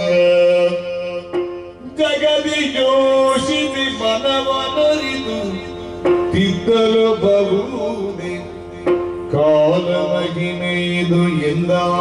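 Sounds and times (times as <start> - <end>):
steady drone: 0.0 - 12.0.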